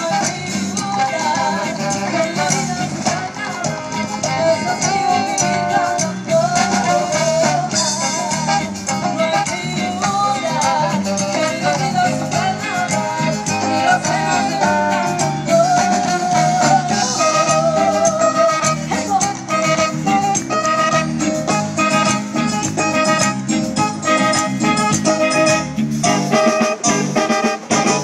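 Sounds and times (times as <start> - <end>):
live latin band over pa: 0.0 - 28.0.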